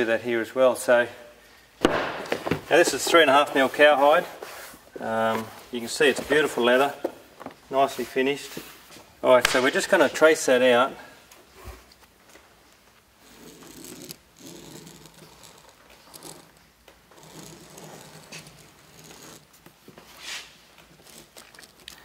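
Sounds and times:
soft rustles of hide: 2.6s - 9.3s, 17.5s - 22.0s
pen scratching on leather: 13.2s - 19.6s.

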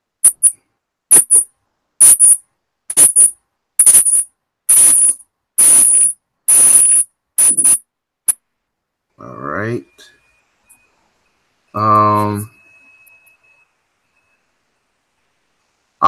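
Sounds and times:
metallic jingling: 2.1s - 7.8s.

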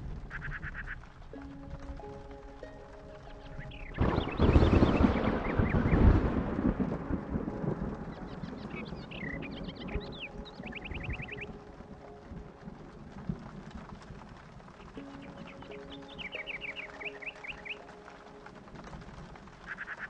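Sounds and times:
steady rain: 0.0s - 20.0s
thunder rolling: 0.0s - 20.0s
birds chirping: 0.2s - 6.5s, 7.4s - 12.5s, 14.8s - 18.8s.

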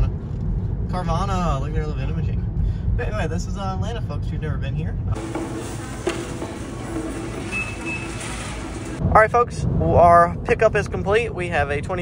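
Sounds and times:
restaurant din: 5.2s - 9.0s
brief high beep: 7.5s - 8.5s.

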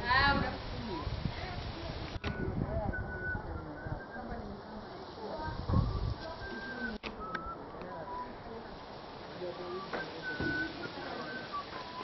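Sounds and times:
faint indistinct voices: 0.0s - 12.0s
bird whistles: 6.4s - 8.3s, 9.6s - 12.0s.

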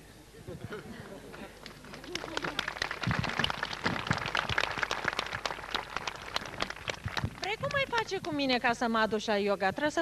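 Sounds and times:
audience applauding: 1.3s - 8.4s.

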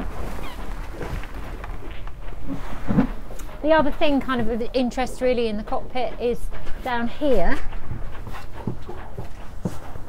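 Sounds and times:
clothing rustling: 0.0s - 4.0s.

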